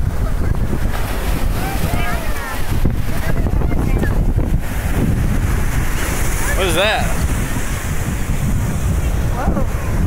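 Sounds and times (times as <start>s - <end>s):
surf breaking on shore: 0.0s - 10.0s
wind buffeting microphone: 0.0s - 10.0s.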